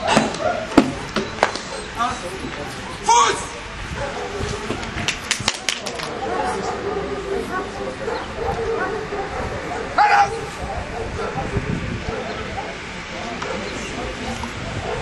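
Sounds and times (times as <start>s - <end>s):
murmur of voices: 0.0s - 15.0s.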